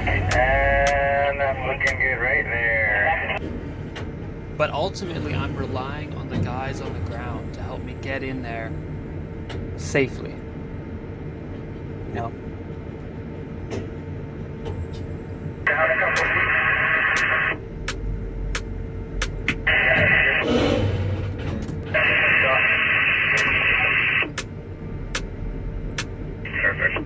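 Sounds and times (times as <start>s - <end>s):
radio hiss: 0.0s - 3.4s, 15.6s - 17.6s, 19.6s - 20.5s, 21.9s - 24.3s, 26.4s - 27.0s
voice over two-way radio: 0.0s - 3.4s, 15.6s - 17.6s, 19.6s - 20.5s, 21.9s - 24.3s, 26.5s - 27.0s
low cab hum: 0.0s - 27.0s.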